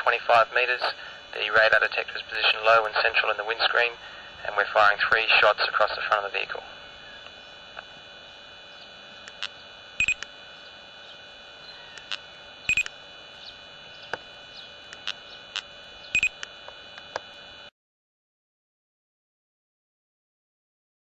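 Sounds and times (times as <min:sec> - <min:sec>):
faint clicks: 0:09.2 - 0:10.3, 0:11.9 - 0:13.0, 0:14.9 - 0:17.3
short electronic beeps: 0:10.0 - 0:10.2, 0:12.7 - 0:12.9, 0:16.2 - 0:16.4.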